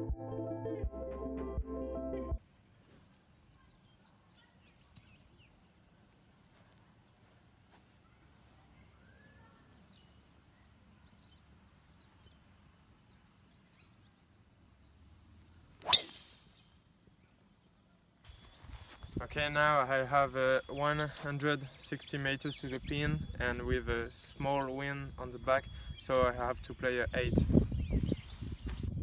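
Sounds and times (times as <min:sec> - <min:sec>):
golf club hitting ball: 0:15.8 - 0:16.5.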